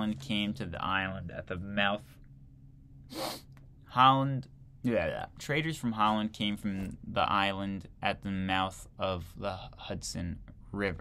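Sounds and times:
man sneezing stifled: 3.1s - 3.5s.

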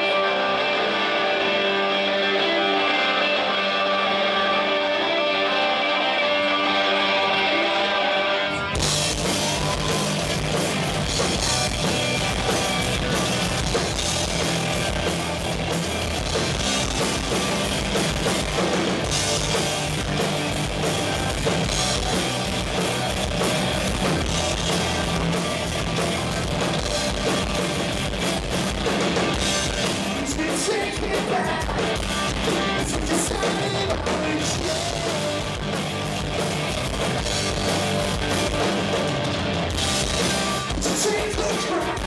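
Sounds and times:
electric guitars: 0.0s - 42.0s
rock band playing: 0.0s - 42.0s
electric bass: 8.4s - 41.5s
drum kit with cymbals: 8.8s - 42.0s.

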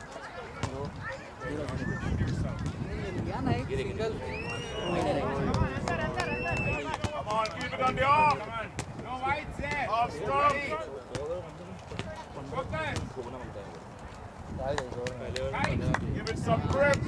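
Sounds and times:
players talking and calling out: 0.0s - 17.0s.

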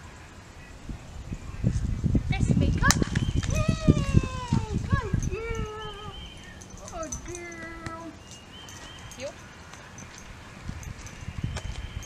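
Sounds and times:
woman praising in high voice: 2.3s - 6.2s, 6.9s - 8.2s
dog paws running on concrete: 6.6s - 12.0s.

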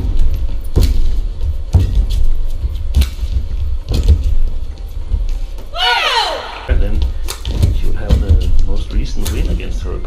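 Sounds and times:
steady low rumble: 6.5s - 10.0s.

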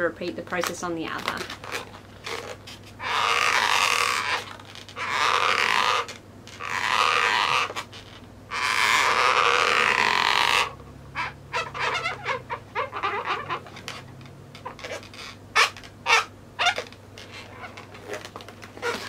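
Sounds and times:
marker squeaking on balloon: 1.2s - 19.0s.

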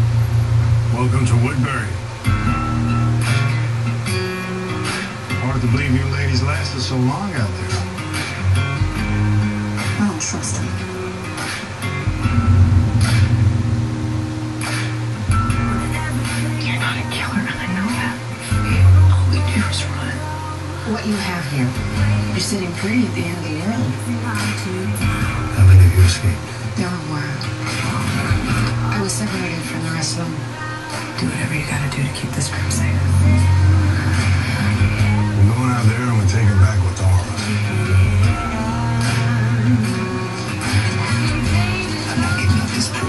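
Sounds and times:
low rumbling soundtrack drone: 0.0s - 4.8s, 8.4s - 30.3s
trailer music: 8.4s - 17.0s
low rumble: 12.0s - 16.9s
short whooshing rush: 12.2s - 15.4s.

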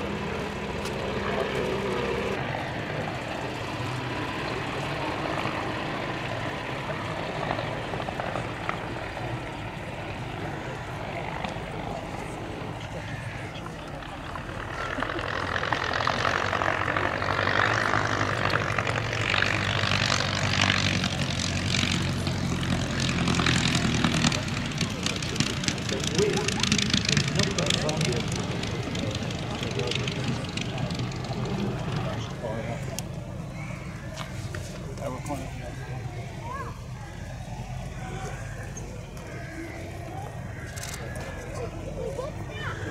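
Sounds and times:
propeller plane engine passing: 0.0s - 42.9s.

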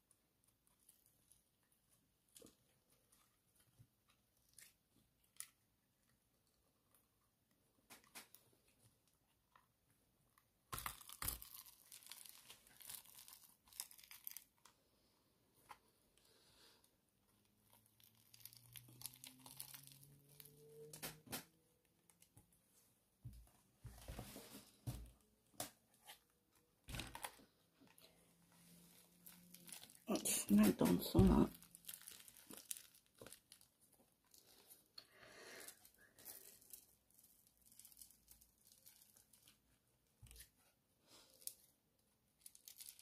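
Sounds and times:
silicone mould peeling off resin: 17.6s - 21.0s.

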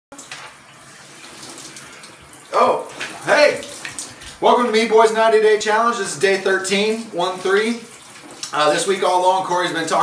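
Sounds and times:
shower spraying water: 0.1s - 10.0s.

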